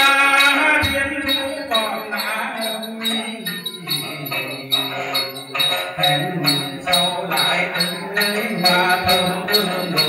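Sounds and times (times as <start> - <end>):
jingle bells shaken: 0.0 - 10.0
plucked lute: 0.0 - 10.0.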